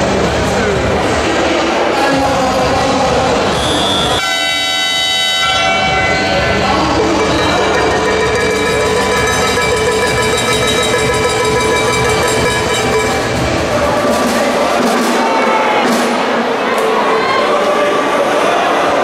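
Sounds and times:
crowd noise in sports hall: 0.0s - 19.0s
held horn tones: 4.2s - 13.9s.

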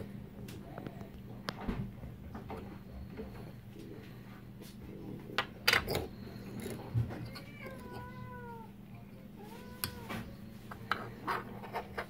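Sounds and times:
cat meowing: 7.2s - 8.7s.

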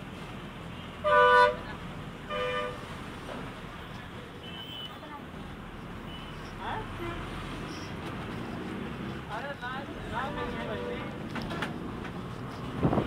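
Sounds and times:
traffic hum: 0.0s - 13.0s
vehicle horn tooting: 1.0s - 1.6s.

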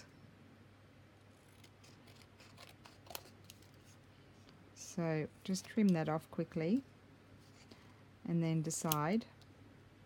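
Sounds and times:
scissors snipping cardstock: 1.4s - 3.7s.

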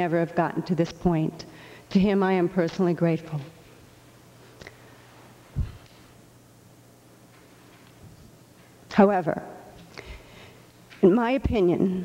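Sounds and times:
woman speaking: 0.0s - 3.6s, 8.9s - 9.7s, 11.0s - 12.0s
faint steady hum: 0.0s - 12.0s.

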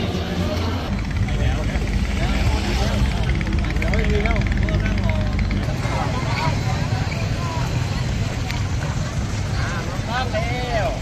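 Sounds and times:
steady low rumble: 0.0s - 9.6s
crowd chattering outdoors: 0.0s - 11.0s.

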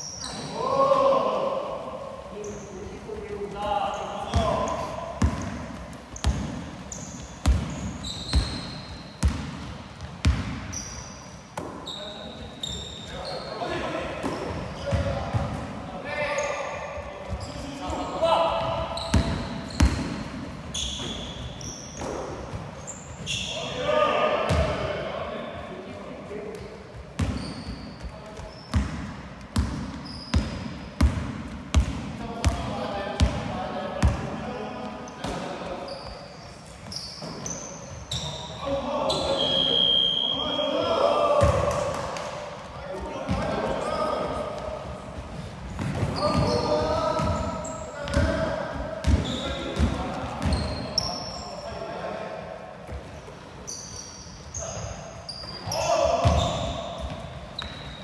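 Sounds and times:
sneaker squeaks: 0.0s - 0.8s, 2.3s - 23.9s, 26.5s - 33.4s, 35.0s - 42.0s, 42.9s - 51.9s, 52.8s - 58.0s.

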